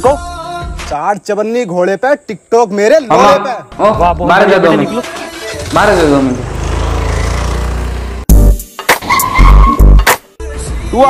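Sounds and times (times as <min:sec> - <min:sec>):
music: 0:00.0 - 0:01.0, 0:03.6 - 0:05.8, 0:08.3 - 0:11.0
heavy bass hits: 0:08.2 - 0:10.1
scooter tyres skidding: 0:08.9 - 0:09.8.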